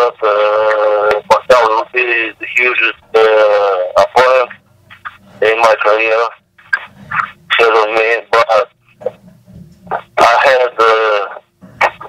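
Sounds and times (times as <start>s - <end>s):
man speaking over telephone line: 0.0s - 9.2s, 9.9s - 12.0s.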